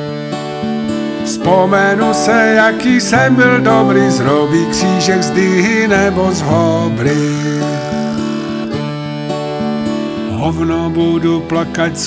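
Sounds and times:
acoustic guitar folk music: 0:00.0 - 0:12.0.

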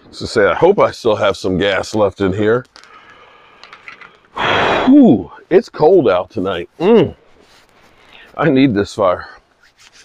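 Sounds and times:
man exhaling breathily: 0:04.3 - 0:05.0
man saying ooh: 0:04.4 - 0:05.4, 0:06.8 - 0:07.2.

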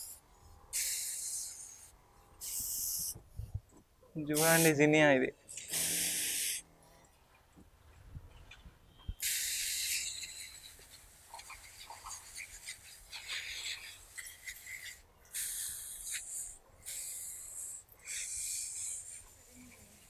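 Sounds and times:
pressure sprayer hissing: 0:00.8 - 0:01.8, 0:02.4 - 0:03.2, 0:04.4 - 0:04.8, 0:05.6 - 0:06.6, 0:09.2 - 0:11.5, 0:13.2 - 0:20.0.

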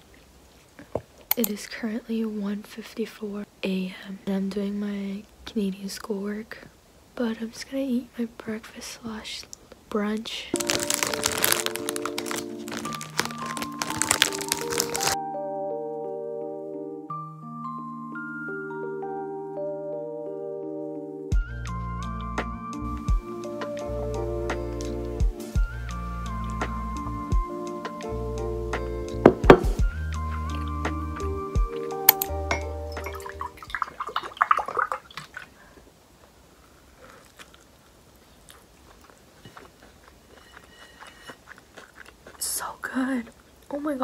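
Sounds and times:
plastic bag crinkling: 0:10.5 - 0:15.2
soda pouring into a cup: 0:10.6 - 0:15.2, 0:33.0 - 0:35.5
light music with mallet melody: 0:10.6 - 0:33.6.

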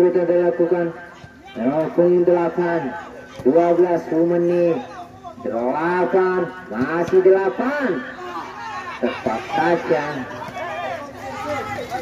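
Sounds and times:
man calling out commentary: 0:00.0 - 0:08.2, 0:09.0 - 0:10.3.

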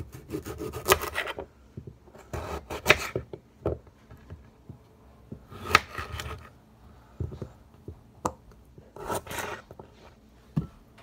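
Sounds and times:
knife sawing through radish: 0:00.0 - 0:01.3.

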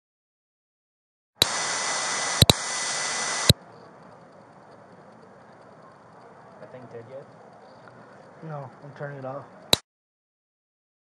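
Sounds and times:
sharp clicks: 0:01.4 - 0:06.3
harsh electronic static hiss: 0:01.4 - 0:09.8.

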